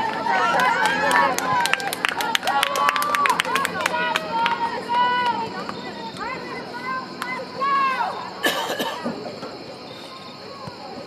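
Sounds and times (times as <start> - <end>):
shouted call: 0.0 - 8.4
person coughing: 8.4 - 9.1.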